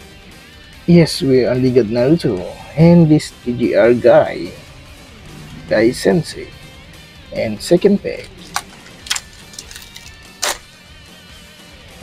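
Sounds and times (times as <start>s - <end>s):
faint background music: 0.0s - 12.0s
foil wrapper crinkling and tearing: 8.5s - 10.6s.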